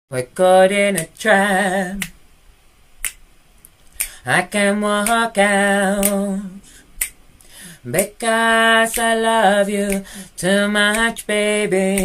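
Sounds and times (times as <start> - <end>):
a cappella singing: 0.1 - 2.2, 4.0 - 6.8, 7.8 - 12.0
finger snap: 0.9 - 1.3, 1.9 - 2.2, 3.0 - 6.4, 7.0 - 12.0.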